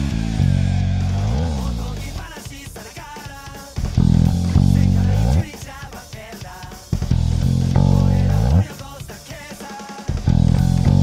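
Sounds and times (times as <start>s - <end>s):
electric bass note sliding up: 0.0s - 2.1s, 4.0s - 5.4s, 7.1s - 8.6s, 10.3s - 11.0s
rock drum kit hits: 0.0s - 11.0s.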